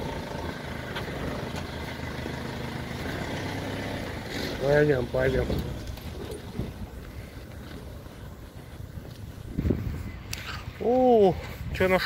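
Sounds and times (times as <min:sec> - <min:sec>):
wind buffeting microphone: 0:05.1 - 0:12.0.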